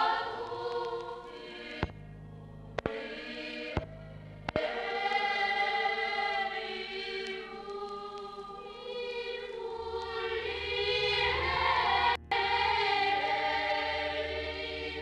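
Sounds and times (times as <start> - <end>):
low hum: 0.0 - 6.7, 7.3 - 15.0
group singing a hymn: 0.0 - 15.0.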